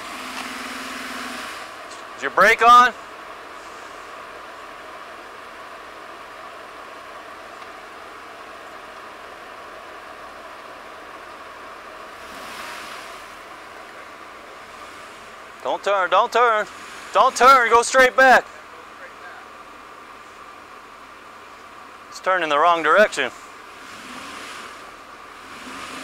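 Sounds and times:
distant engine and tyres in snow: 0.0 - 26.0.

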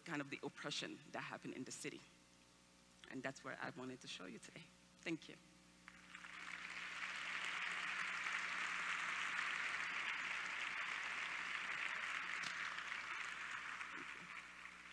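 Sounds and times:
audience applauding: 5.9 - 14.9.

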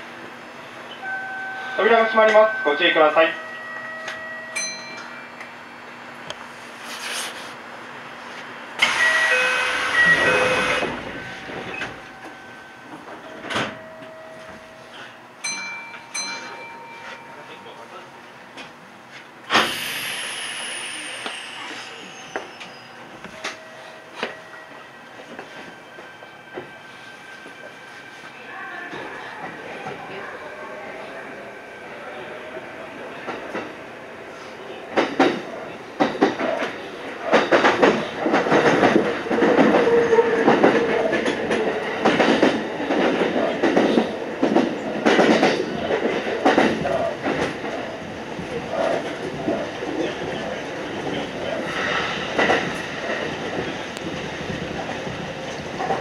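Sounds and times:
electric train pulling away: 8.0 - 15.6, 19.4 - 28.3.

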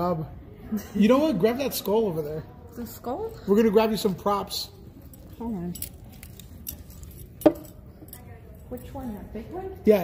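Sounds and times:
clicks and clinks of handling: 5.0 - 9.2.

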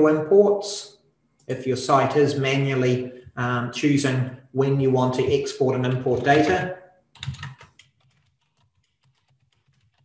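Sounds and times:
computer keyboard typing: 7.2 - 10.0.

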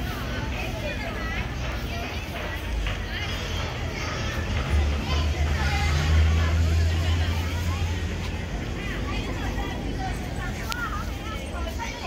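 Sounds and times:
engine rumble: 0.0 - 12.0
people talking: 0.0 - 12.0.

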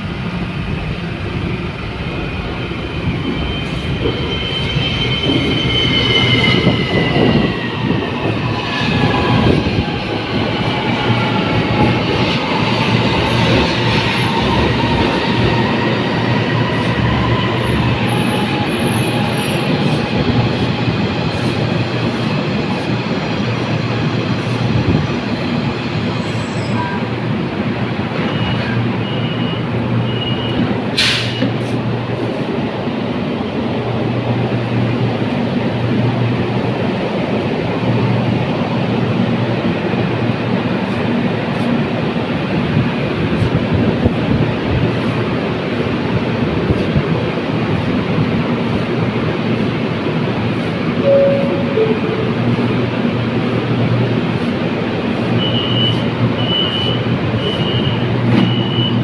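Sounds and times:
train wheels rolling on rails: 0.0 - 51.0, 52.4 - 59.0
train doors operating: 28.0 - 32.5
door chime: 51.0 - 52.5
short beeps: 51.0 - 52.7.

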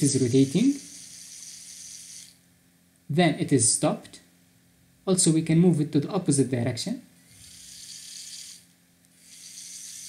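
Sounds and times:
small gear motor whirring: 0.0 - 2.4, 7.2 - 10.0.

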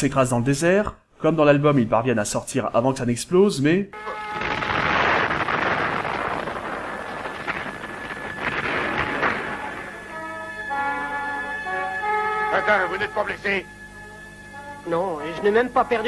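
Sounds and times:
cartoon explosion: 4.0 - 10.2
music with long held notes: 4.0 - 16.0.

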